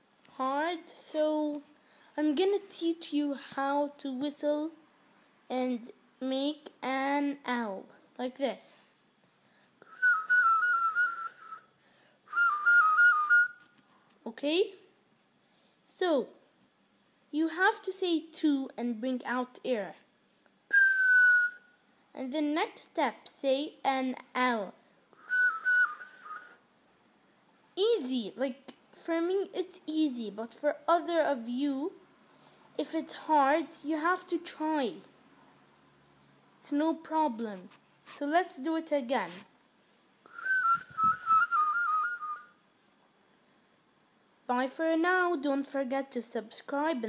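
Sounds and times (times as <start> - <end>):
boy whistling: 9.8 - 11.7, 12.3 - 13.8, 20.7 - 21.7, 25.2 - 26.6, 40.3 - 42.6
boy whistling one note: 25.2 - 26.6, 40.3 - 42.6.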